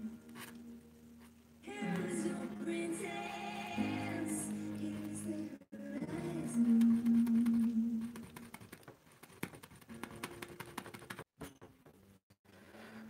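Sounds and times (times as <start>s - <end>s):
faint background music: 0.0s - 8.4s.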